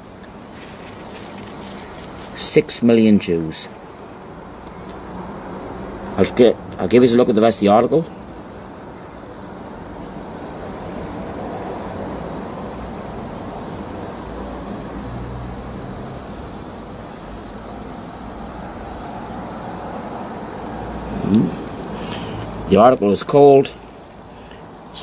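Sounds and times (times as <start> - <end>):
short vocal sound: 21.0 - 22.3.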